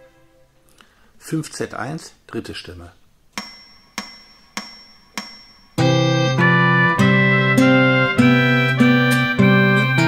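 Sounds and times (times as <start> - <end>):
metronome clicks: 3.4 - 5.9.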